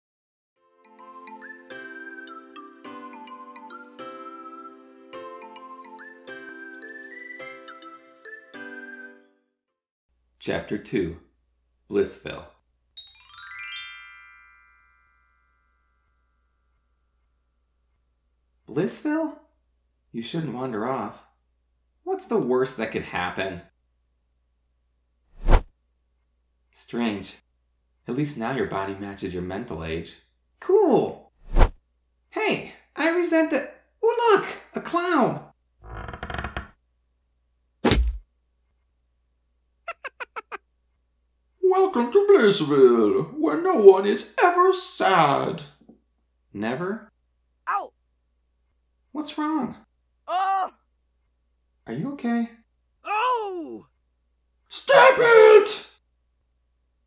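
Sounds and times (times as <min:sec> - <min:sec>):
ringing chime-like notes: 0:13.0 - 0:17.2
cartoon creak: 0:35.8 - 0:36.8
loud cartoon thunk: 0:37.8 - 0:38.2.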